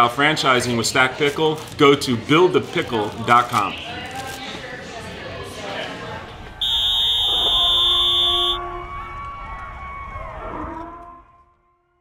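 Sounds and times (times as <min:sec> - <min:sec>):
background noise: 0:00.0 - 0:11.7
electronic buzzer: 0:06.6 - 0:08.6
held tones: 0:06.6 - 0:08.6.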